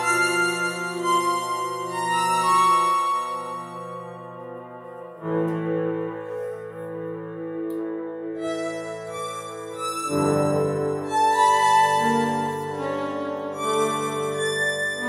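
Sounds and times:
electronic keyboard playing chords: 0.0s - 15.0s.

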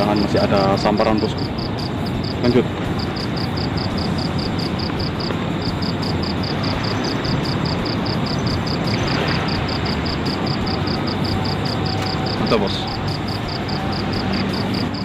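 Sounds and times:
insect chirping: 0.0s - 15.0s
steady rushing noise: 0.0s - 15.0s.

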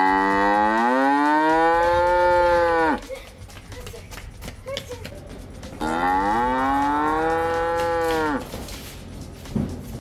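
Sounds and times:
cow mooing: 0.0s - 3.0s, 5.8s - 8.5s.

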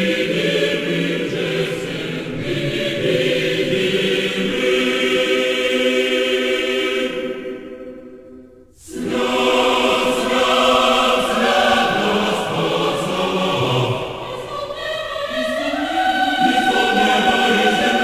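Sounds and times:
choir singing church music: 0.0s - 18.0s.

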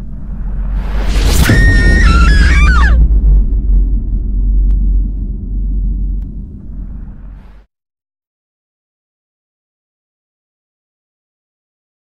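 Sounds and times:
deep low rumble: 0.0s - 7.7s
shrill screeching cry: 1.4s - 3.1s.

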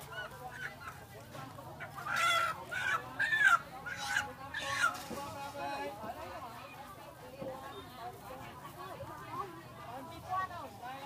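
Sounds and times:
chickens squawking: 0.0s - 5.1s.

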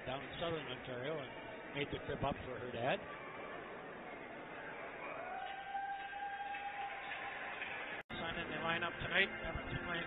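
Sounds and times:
crowd applauding and cheering: 5.0s - 10.0s.

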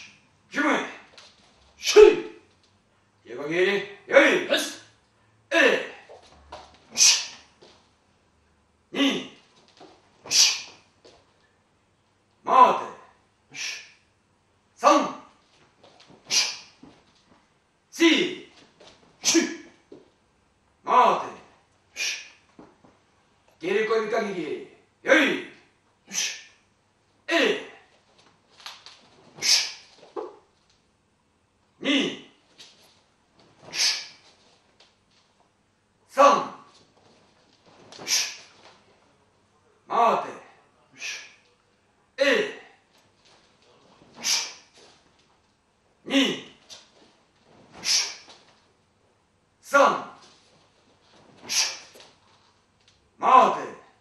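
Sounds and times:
person shouting: 1.8s - 2.4s
sharp hissing exhalation: 10.3s - 10.8s, 16.3s - 16.8s, 33.7s - 34.2s, 44.2s - 44.7s, 47.8s - 48.3s, 51.4s - 52.0s.

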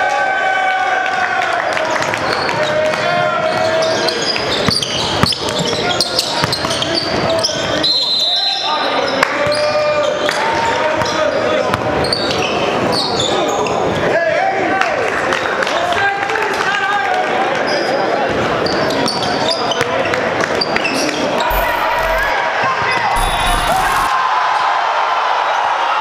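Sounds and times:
sneaker squeaks: 3.8s - 7.6s
people talking: 21.5s - 22.3s, 23.2s - 24.1s.

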